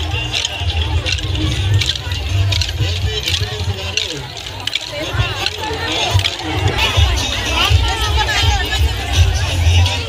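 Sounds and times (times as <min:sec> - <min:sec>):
heavy bass beat: 0:00.0 - 0:10.0
sticks clacking in rhythm: 0:00.0 - 0:10.0
women's voices: 0:04.9 - 0:10.0.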